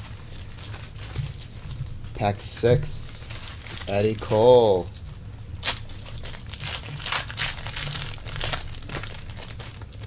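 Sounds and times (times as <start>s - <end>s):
foil wrapper tearing and crinkling: 0.0s - 10.0s.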